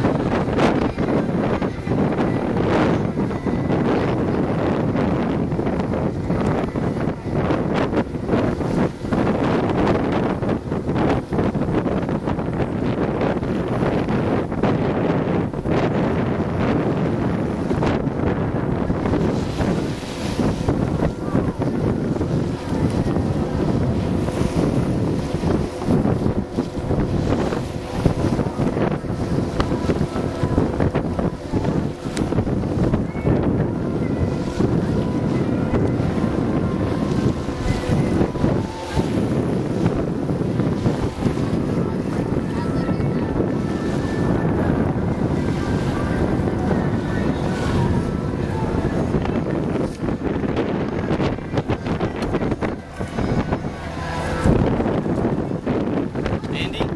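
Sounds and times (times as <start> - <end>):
water wash: 0.0 - 56.9
wind buffeting microphone: 0.0 - 56.9.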